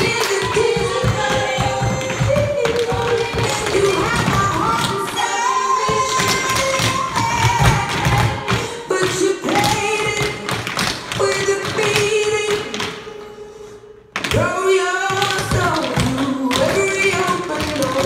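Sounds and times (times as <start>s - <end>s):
music with singer: 0.0s - 18.0s
tap shoes on hardwood floor: 0.1s - 5.0s.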